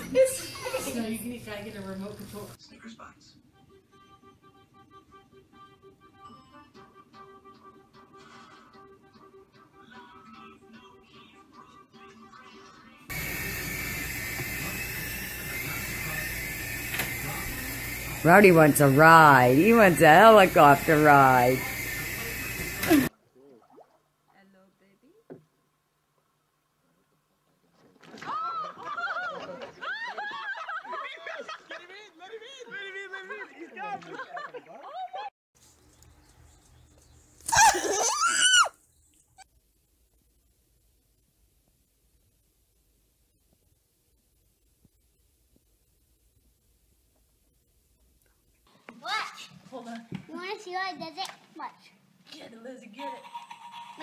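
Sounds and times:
faint background music: 0.0 - 13.1
thin high whine: 13.1 - 23.1.

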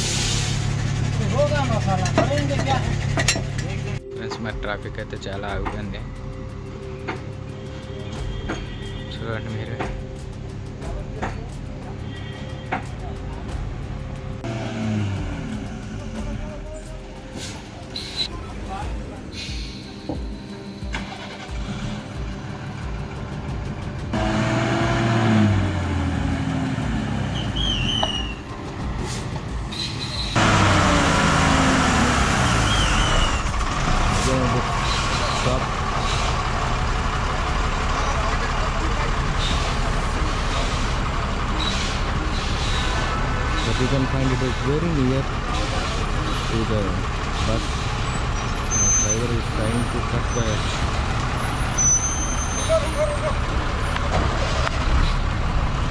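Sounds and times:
lorry diesel engine revving: 0.0 - 55.9.

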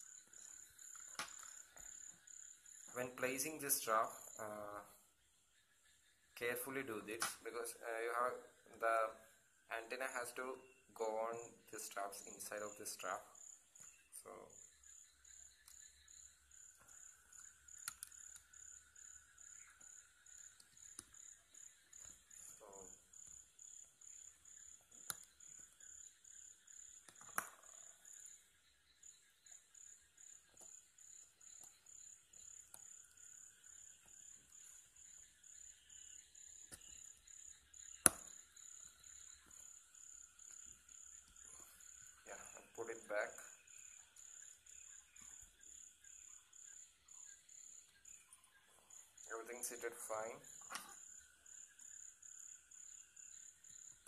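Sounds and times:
crickets chirping: 0.0 - 54.0.

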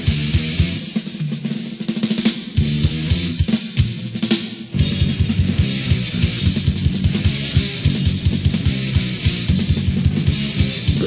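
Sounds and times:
distorted guitar: 0.0 - 1.6, 2.6 - 11.0
fast kick-drum beat: 0.0 - 11.0
thrash metal band: 0.0 - 11.0.

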